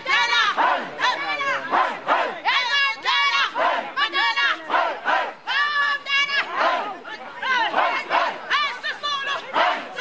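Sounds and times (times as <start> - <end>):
crowd chanting and singing: 0.0 - 10.0.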